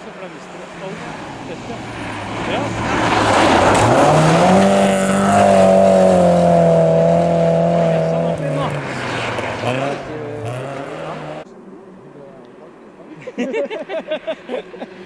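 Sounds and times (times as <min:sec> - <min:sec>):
rally car engine revving: 0:00.2 - 0:11.5.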